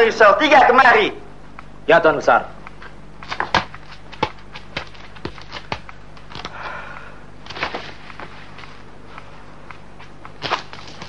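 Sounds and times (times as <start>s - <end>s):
footsteps walking away: 2.7s - 6.6s, 7.4s - 11.0s.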